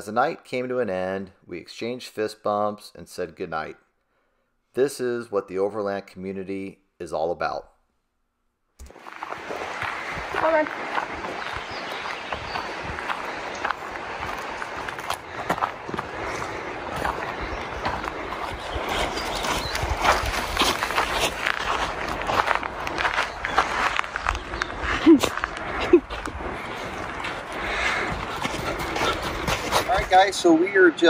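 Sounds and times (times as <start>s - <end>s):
footsteps crunching on dirt: 8.8s - 30.2s.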